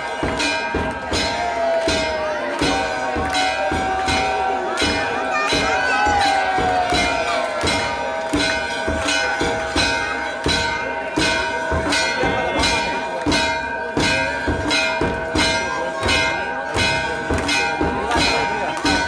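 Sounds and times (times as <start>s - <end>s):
temple bells ringing: 0.0s - 19.0s
struck beat with low thump: 0.1s - 19.0s.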